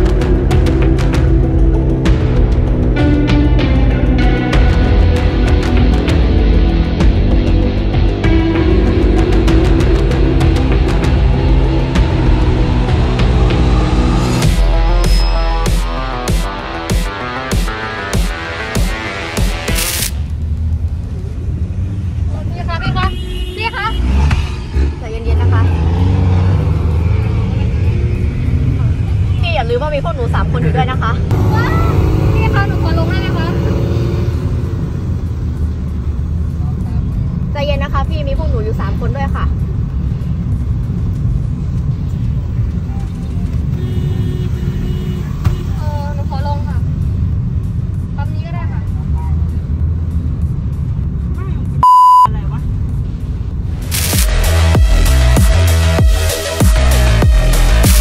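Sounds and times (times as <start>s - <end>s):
car engine and road noise: 0.0s - 58.0s
censor bleep: 51.8s - 52.3s.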